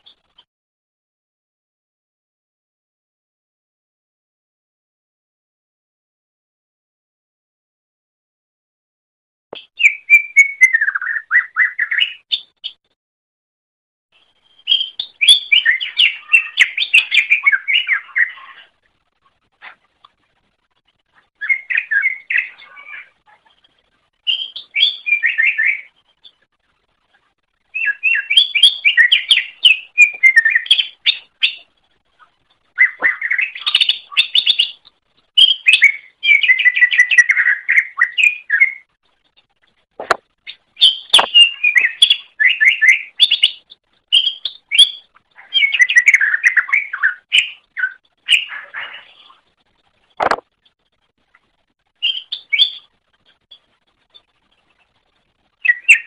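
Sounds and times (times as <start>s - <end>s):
bird chirping rapidly: 14.3s - 18.7s, 21.4s - 26.4s, 27.7s - 31.8s, 32.7s - 38.9s, 40.5s - 49.4s, 52.0s - 53.7s, 55.6s - 56.0s
sharp clicks: 41.1s - 41.9s, 50.2s - 50.4s.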